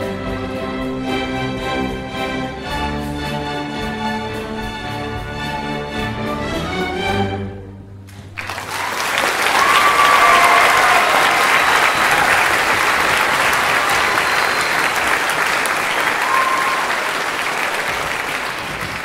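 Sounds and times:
orchestral song: 0.0s - 9.0s
audience applauding: 8.1s - 19.0s.

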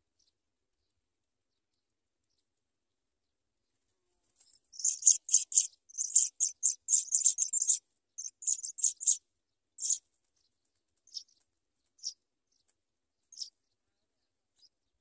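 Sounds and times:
nestlings begging calls: 4.7s - 9.2s, 9.8s - 10.0s.

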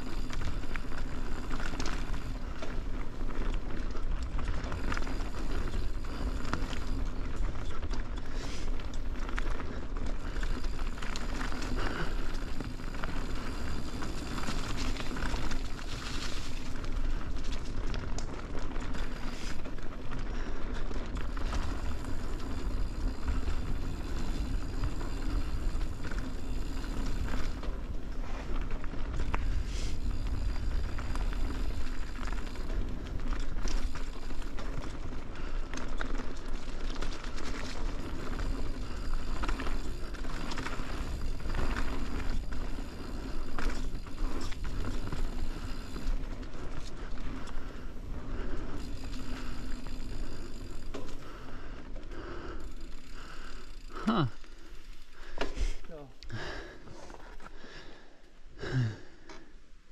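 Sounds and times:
bike chain rattling: 0.0s - 57.2s
bike tyres on dirt: 0.0s - 59.9s.

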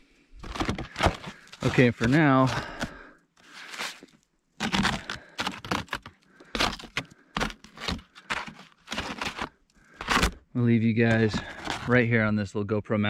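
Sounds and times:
camera handling scrapes and crunches: 0.4s - 12.0s.

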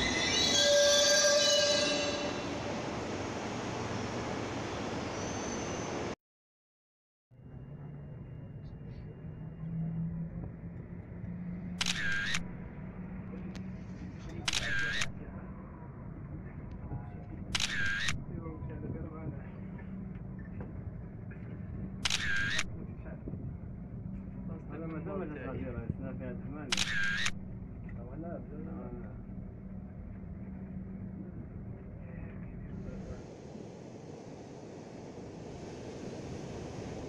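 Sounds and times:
camera shutter clicks: 11.8s - 12.5s, 14.5s - 15.1s, 17.6s - 18.2s, 22.0s - 22.7s, 26.7s - 27.4s.

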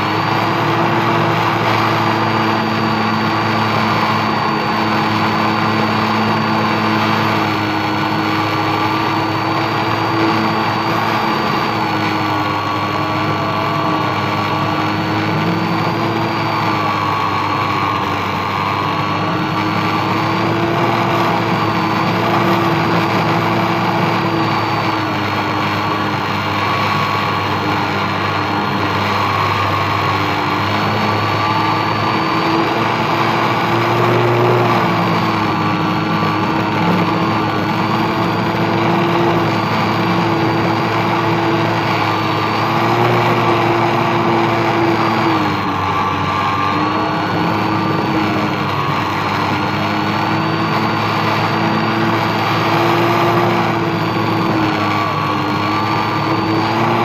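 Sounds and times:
model airplane motor and propeller: 0.0s - 57.0s.

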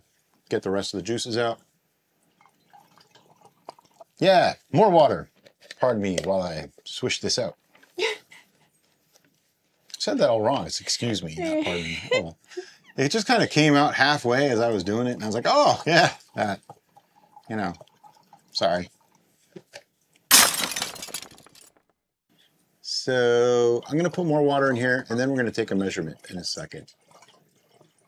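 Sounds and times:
glass shattering: 20.3s - 21.8s.

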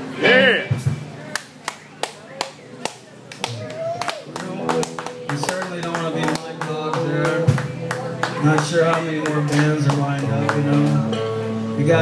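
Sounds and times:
handclaps: 1.3s - 11.0s
electric guitar notes: 3.5s - 12.0s.

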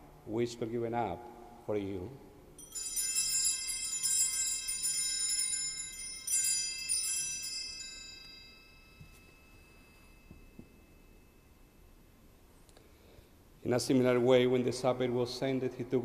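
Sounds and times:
altar bells ringing: 2.6s - 12.1s.

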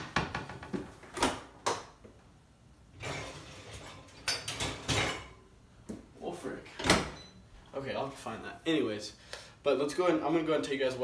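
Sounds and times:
dishware clattering: 3.0s - 5.4s.

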